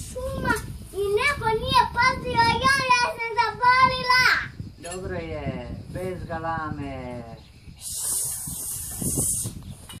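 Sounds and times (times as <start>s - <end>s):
cicadas buzzing: 0.0s - 9.9s.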